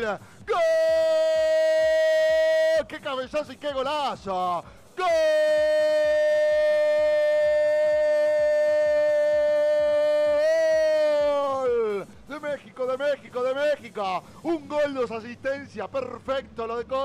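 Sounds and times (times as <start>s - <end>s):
commentator shouting goal call: 5.0s - 13.6s.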